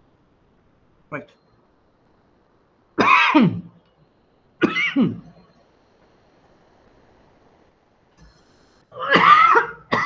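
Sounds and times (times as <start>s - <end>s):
man coughing hard: 3.0s - 3.6s, 4.6s - 5.3s, 9.0s - 10.0s.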